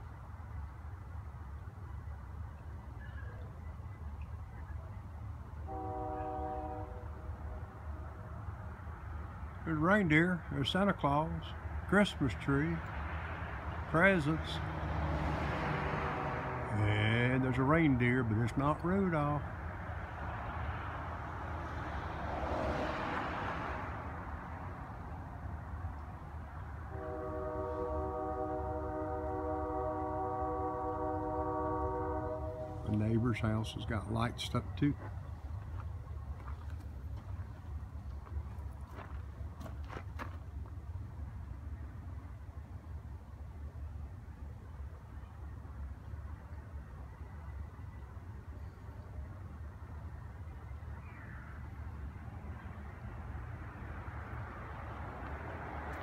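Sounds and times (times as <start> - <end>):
horn sounding: 5.6 - 7.8, 15.5 - 18.3, 26.9 - 34.8.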